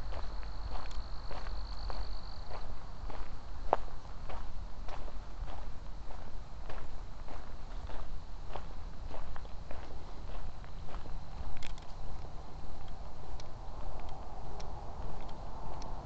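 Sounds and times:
footsteps on fine gravel: 0.0s - 15.9s.

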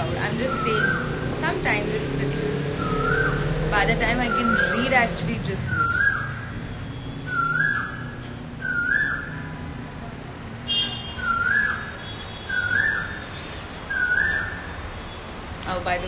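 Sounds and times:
bird whistled call: 5.7s - 6.4s, 7.2s - 9.5s, 11.2s - 11.9s, 12.5s - 13.2s, 13.9s - 14.7s.

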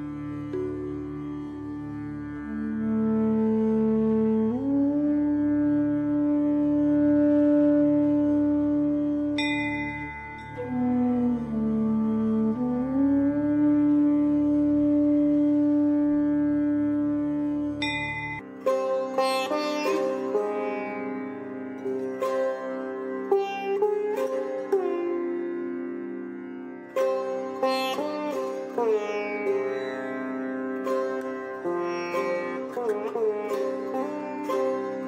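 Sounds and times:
sitar melody with sliding notes: 0.0s - 35.0s.

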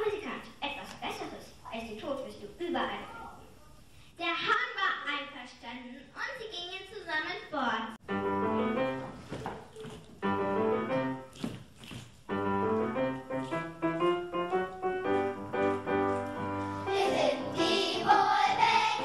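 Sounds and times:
piano playing: 8.0s - 9.3s, 10.2s - 11.4s, 12.3s - 19.0s
children's choir singing: 16.7s - 19.0s.

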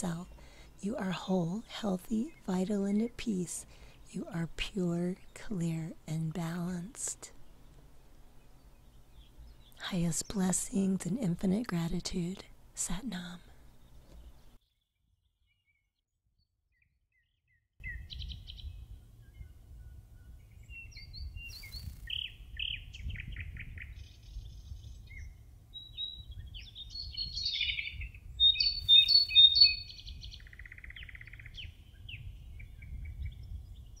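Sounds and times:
small birds chirping: 0.0s - 15.9s, 16.8s - 34.0s.

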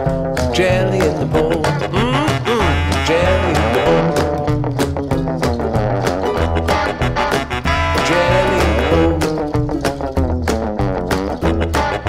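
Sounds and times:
upbeat instrumental music: 0.0s - 12.0s.

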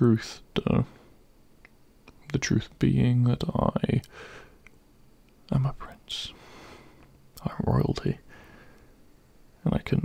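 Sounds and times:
man speaking softly: 0.0s - 1.0s, 2.2s - 4.1s, 5.4s - 6.4s, 7.4s - 8.3s, 9.6s - 10.0s
man breathing: 4.1s - 4.7s, 6.3s - 7.2s, 8.2s - 9.1s.

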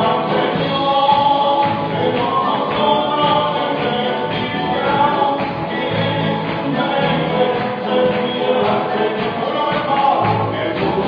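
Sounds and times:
church band playing: 0.0s - 11.0s
group singing gospel song: 0.0s - 11.0s.

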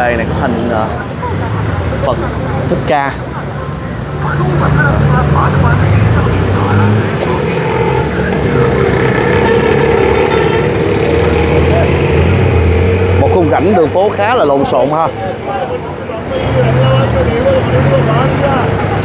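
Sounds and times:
diesel bus engines droning: 0.0s - 19.0s
traffic noise: 0.0s - 19.0s
voices: 0.0s - 19.0s.

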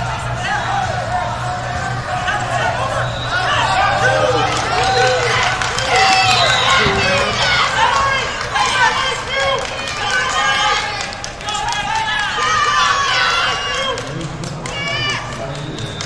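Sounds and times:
crowd shouting: 0.0s - 15.4s.

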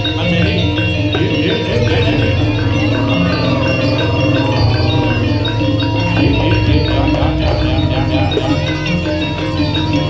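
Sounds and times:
gamelan music: 0.0s - 10.0s.

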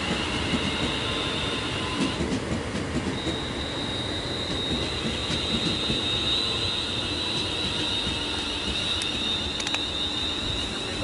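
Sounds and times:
electric train whine: 0.0s - 11.0s
wheels rumbling on track: 0.0s - 11.0s
sharp clicks: 9.0s - 9.8s.

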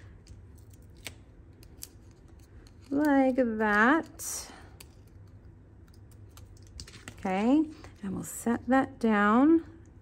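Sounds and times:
low steady hum: 0.0s - 10.0s
handling of card: 4.8s - 8.1s.

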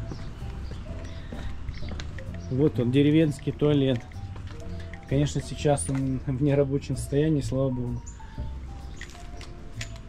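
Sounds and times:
footsteps on wooden boards: 0.0s - 2.7s.

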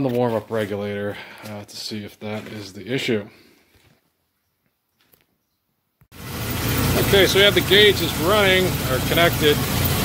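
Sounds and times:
car engine running: 6.1s - 10.0s.

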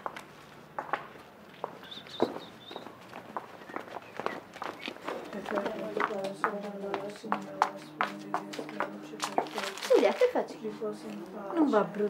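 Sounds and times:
footsteps on cobblestones: 0.0s - 11.2s.

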